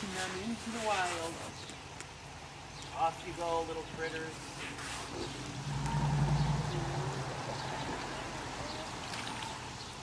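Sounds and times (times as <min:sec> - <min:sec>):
creek running: 0:00.0 - 0:10.0
water splashing and pouring: 0:07.0 - 0:10.0.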